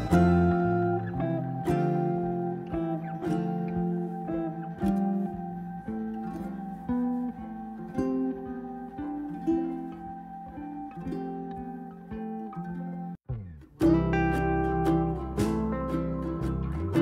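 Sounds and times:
plucked acoustic guitar music: 0:00.0 - 0:17.0.

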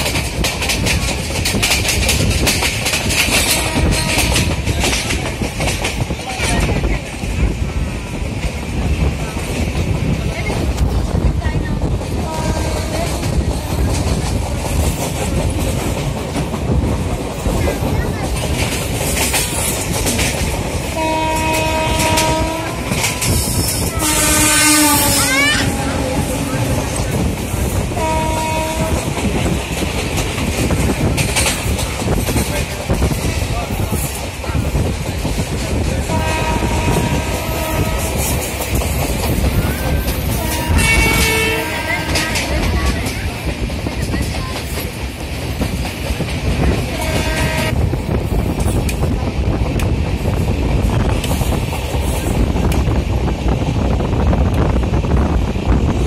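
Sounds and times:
train wheels rumbling on rail: 0:00.0 - 0:56.0
train horn hoots: 0:03.4 - 0:04.6, 0:12.3 - 0:13.2, 0:21.0 - 0:26.9, 0:28.0 - 0:29.2, 0:36.1 - 0:38.2, 0:40.4 - 0:42.7, 0:47.0 - 0:47.8.

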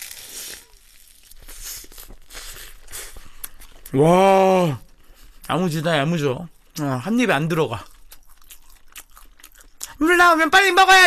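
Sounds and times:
moist crunchy chewing: 0:00.0 - 0:04.2, 0:04.8 - 0:10.0.

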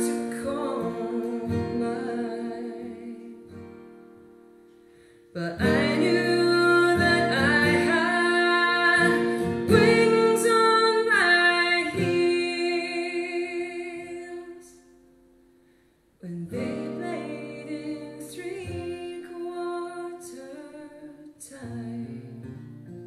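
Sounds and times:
woman singing folk song: 0:00.0 - 0:15.2, 0:16.1 - 0:23.0
acoustic guitar: 0:00.0 - 0:23.0.

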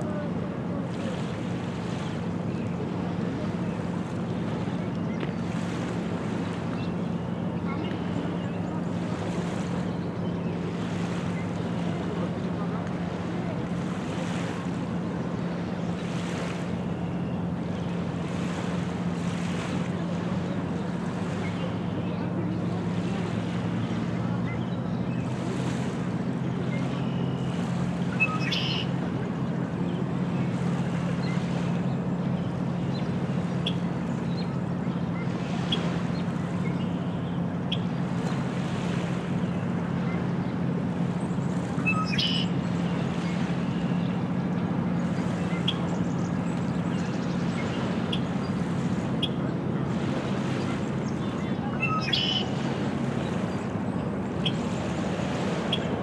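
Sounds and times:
low engine drone: 0:00.0 - 0:56.0.

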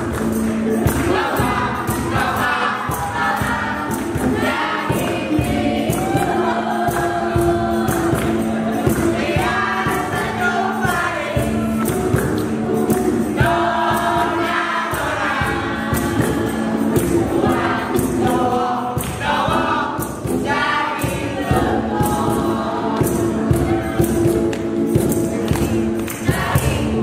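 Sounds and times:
group of voices singing: 0:00.0 - 0:27.0
percussive beat: 0:00.0 - 0:27.0.

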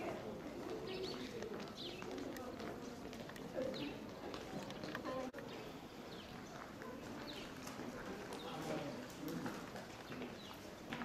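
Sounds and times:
birds chirping: 0:00.0 - 0:09.0
crowd murmur: 0:00.0 - 0:11.0.

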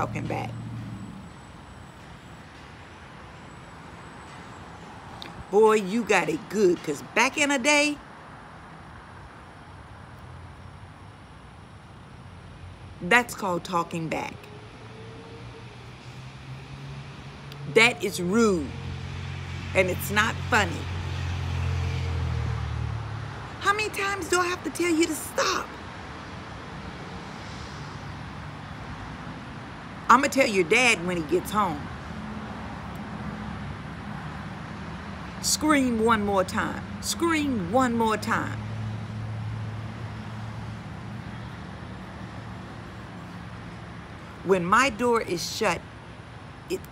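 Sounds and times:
road vehicles humming: 0:00.0 - 0:46.9.

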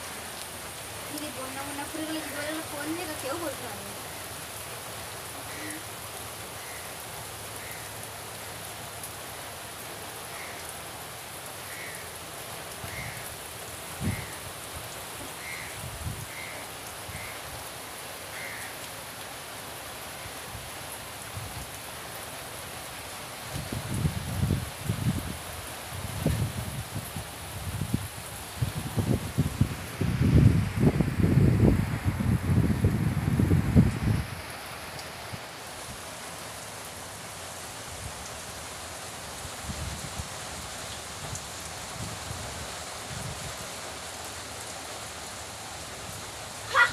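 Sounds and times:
rain hissing: 0:00.0 - 0:46.9.

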